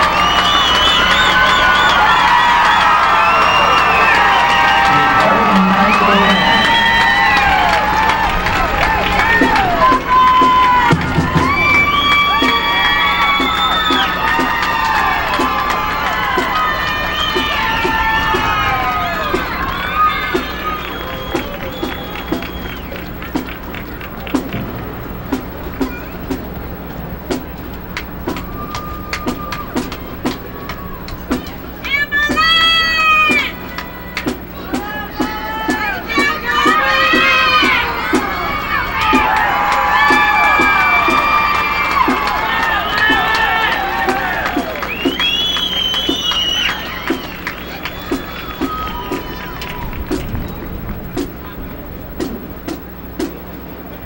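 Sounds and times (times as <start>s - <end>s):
percussion steady beat: 0.0s - 54.0s
steady background noise: 0.0s - 54.0s
marching band playing: 0.9s - 53.4s
marching band drum hits: 7.9s - 26.5s.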